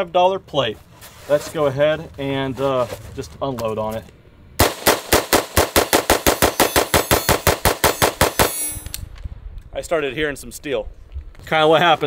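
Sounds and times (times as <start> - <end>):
pistol fired rapidly: 4.6 - 8.6.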